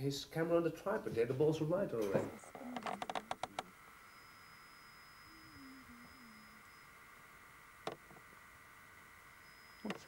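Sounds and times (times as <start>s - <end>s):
faint steady hum: 0.0s - 10.0s
thin high whine: 1.6s - 10.0s.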